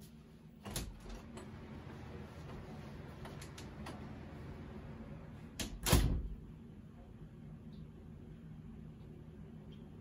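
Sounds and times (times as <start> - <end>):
door thumping shut and latching: 5.6 - 6.4.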